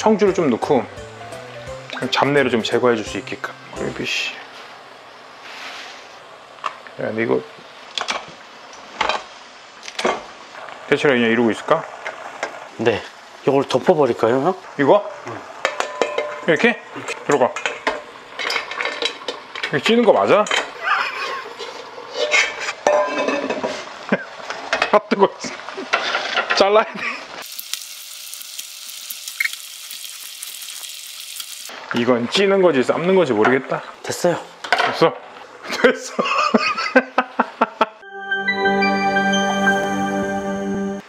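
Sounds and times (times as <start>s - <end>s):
sizzling hiss: 0.0s - 20.4s, 23.5s - 32.3s
metal bowl clanking on pot: 15.6s - 16.5s, 22.2s - 23.6s.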